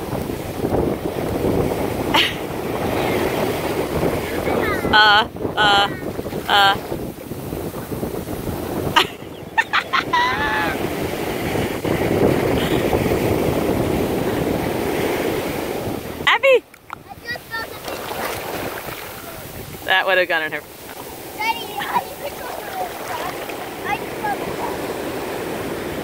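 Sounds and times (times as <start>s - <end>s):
ocean surf washing ashore: 0.0s - 26.0s
wind buffeting microphone: 0.0s - 26.0s.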